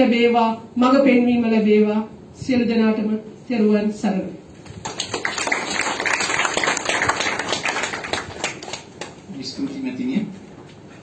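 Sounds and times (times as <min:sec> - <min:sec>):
audience applauding: 0:04.8 - 0:09.2.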